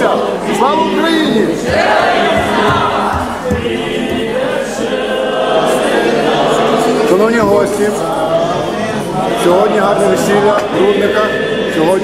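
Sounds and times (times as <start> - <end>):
group singing with held notes: 0.0 - 12.0.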